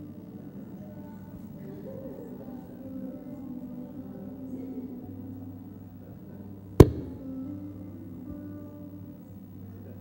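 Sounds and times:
low steady hum: 0.0 - 10.0
sharp knock: 6.8 - 7.2.

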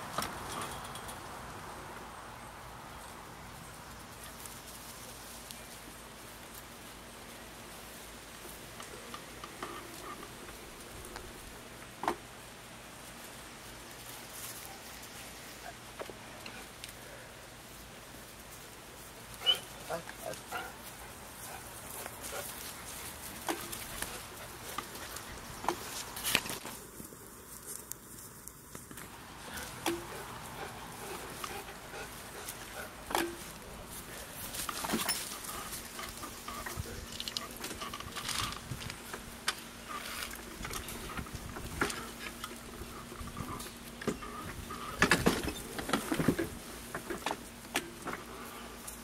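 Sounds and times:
steady outdoor background: 0.0 - 49.0
puppy yipping: 19.4 - 19.7.

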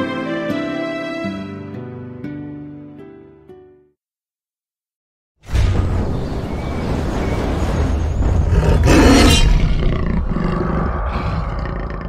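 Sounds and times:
animal roar: 8.5 - 12.0.

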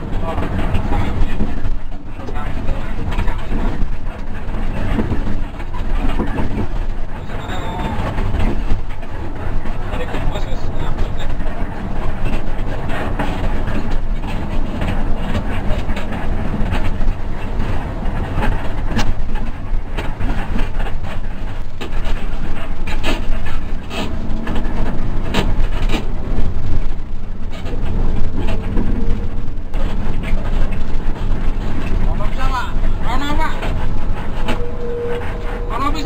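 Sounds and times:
body and dashboard rattles: 0.0 - 36.0
bus engine and tyre rumble: 0.0 - 36.0.

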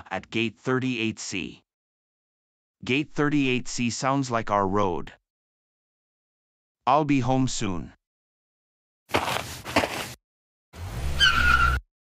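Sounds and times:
tyre squeal: 11.0 - 11.9.

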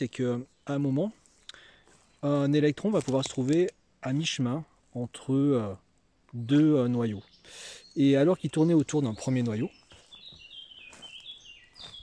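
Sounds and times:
songbird singing: 0.0 - 12.0.

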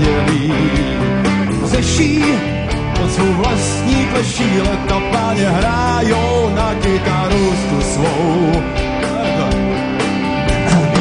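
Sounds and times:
drum kit with cymbals: 0.0 - 11.0
electric guitar: 0.0 - 11.0
person singing: 0.0 - 11.0.

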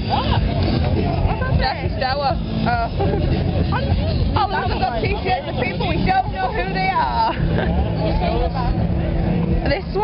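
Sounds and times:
crowd babble: 0.0 - 10.0
group talking and chanting: 0.0 - 10.0.

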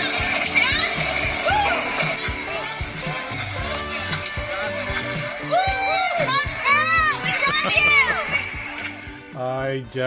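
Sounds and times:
intro music: 0.0 - 10.0
voices shouting and whooping: 1.3 - 2.1.

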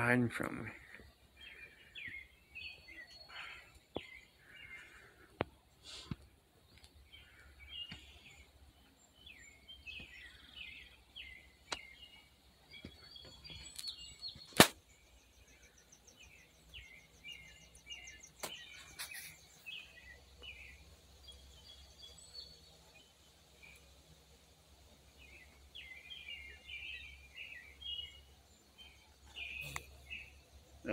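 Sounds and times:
small birds chirping: 0.0 - 30.9.

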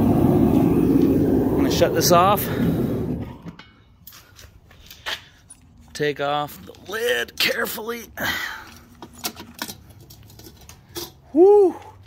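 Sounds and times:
gas burner roar: 0.0 - 3.7.

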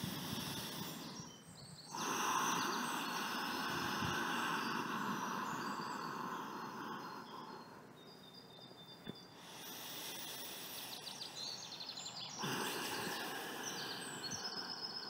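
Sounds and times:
person breathing out: 0.0 - 1.3, 1.9 - 7.7, 12.4 - 15.0
faint bird chirps: 0.0 - 15.0.

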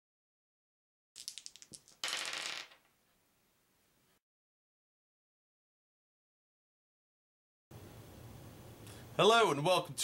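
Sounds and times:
dice clattering on wooden table: 1.2 - 3.0.

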